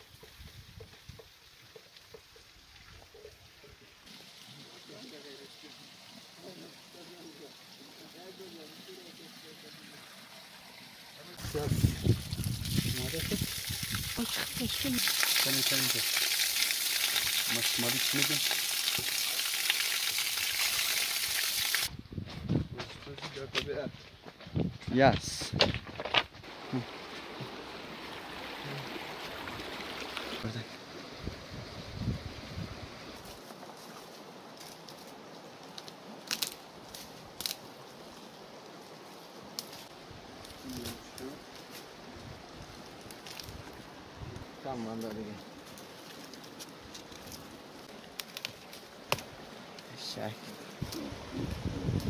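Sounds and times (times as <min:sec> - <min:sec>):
water pouring over rocks: 0:00.0 - 0:21.9, 0:26.5 - 0:30.6, 0:42.6 - 0:52.0.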